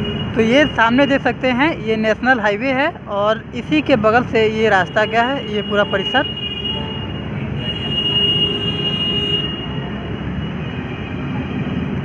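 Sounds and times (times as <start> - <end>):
highway traffic rumble: 0.0 - 12.0.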